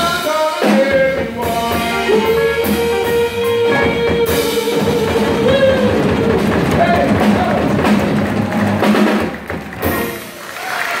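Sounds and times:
drum and cymbal hit: 0.0 - 10.3
jazz combo playing: 0.0 - 10.7.

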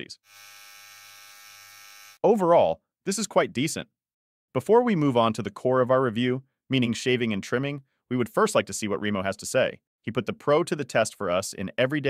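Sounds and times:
electric trimmer running: 0.2 - 2.2.

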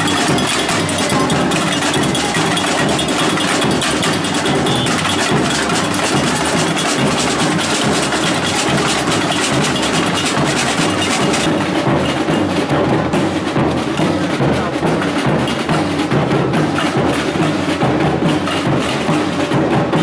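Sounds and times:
samba drum band playing: 0.0 - 20.0.

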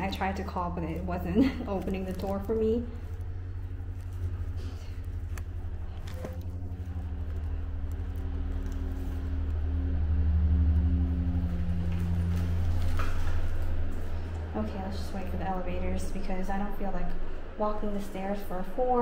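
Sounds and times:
low machine hum with tones: 0.0 - 19.0.

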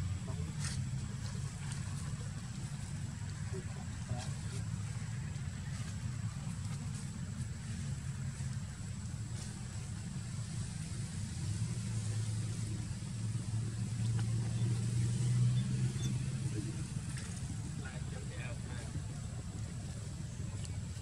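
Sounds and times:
vehicle engine rumble: 0.0 - 21.0.

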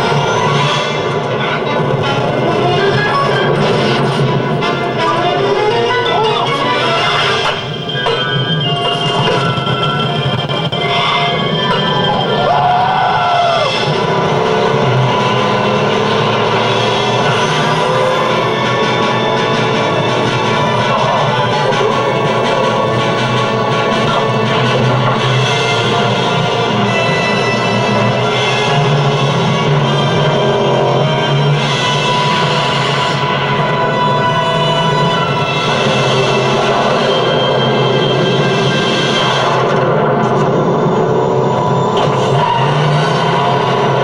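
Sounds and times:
music playing: 0.0 - 44.0.

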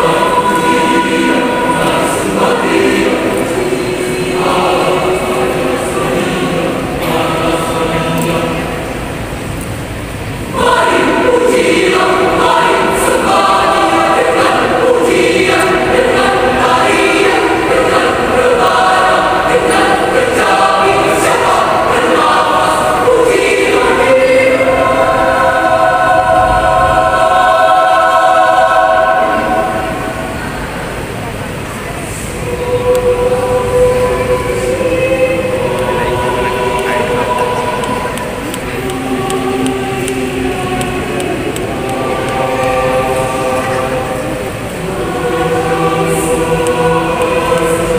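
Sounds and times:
choir singing: 0.0 - 47.9.

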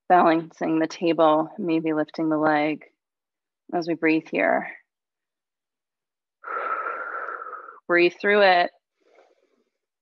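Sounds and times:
woman breathing out through mouth: 6.4 - 7.8.

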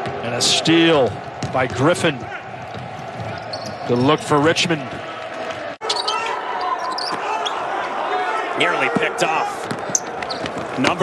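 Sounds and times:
players' voices: 0.0 - 11.0
shoe squeaks: 3.2 - 4.2, 5.8 - 7.6, 9.8 - 10.6.

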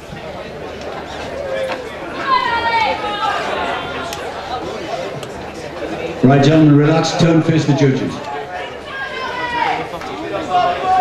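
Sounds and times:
murmur of crowd chatter: 0.0 - 11.0.

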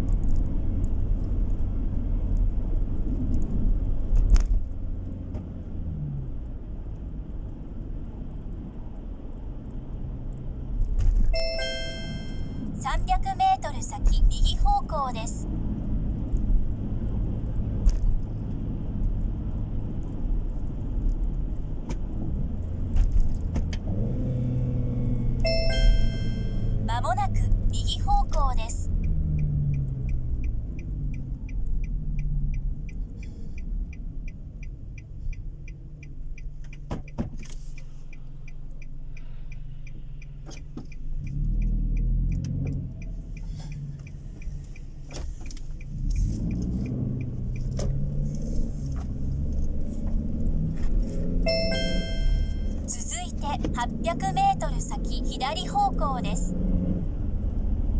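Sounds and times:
car interior road noise: 0.0 - 57.9
turn signal ticking: 0.0 - 57.9
navigation chime: 11.4 - 12.8, 25.5 - 27.4, 51.5 - 52.9
synthesized voice prompt: 25.6 - 28.9, 51.5 - 56.5.

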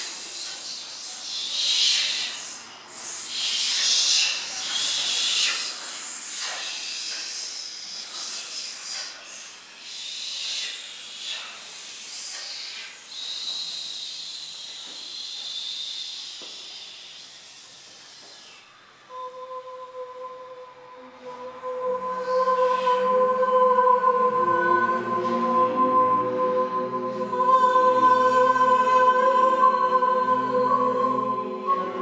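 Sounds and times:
group of voices hissing: 0.0 - 18.8
held sung note: 19.1 - 32.0.

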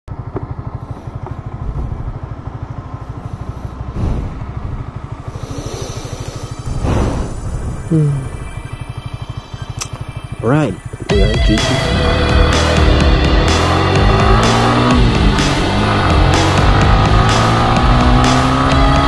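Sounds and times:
motorcycle engine idling: 0.1 - 18.4
person sighing: 7.9 - 8.4.

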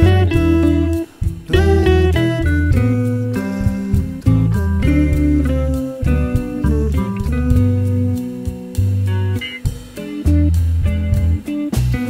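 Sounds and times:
drum beat: 0.0 - 12.0
guitar-led music: 0.0 - 12.0.

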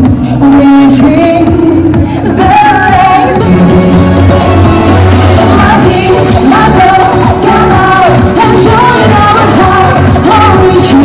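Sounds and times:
pop accompaniment with bass: 0.0 - 11.0
woman singing pop song: 0.0 - 11.0.

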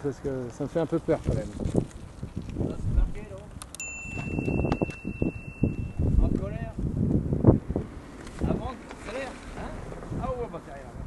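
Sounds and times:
wind noise on microphone: 0.1 - 11.0.

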